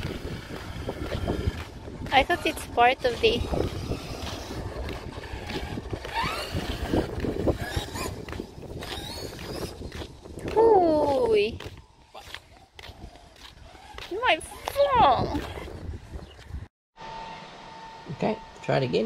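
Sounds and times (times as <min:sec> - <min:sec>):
toy truck motor whining: 0:00.0 - 0:10.2
wind rumble on microphone: 0:00.0 - 0:16.7.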